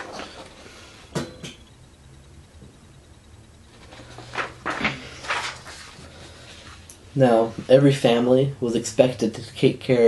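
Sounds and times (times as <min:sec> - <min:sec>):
paper rustling and crackling: 0:03.8 - 0:06.1.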